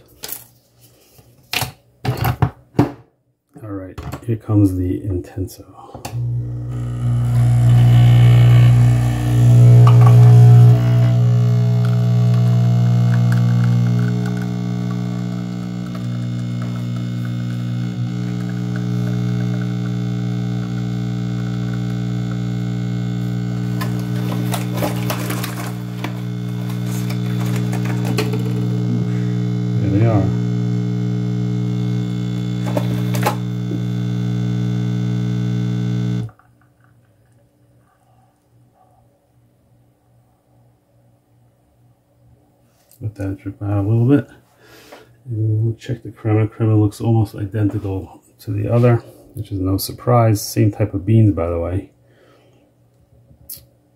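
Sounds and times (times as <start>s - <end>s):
coffee machine pump humming: 6.0s - 36.5s.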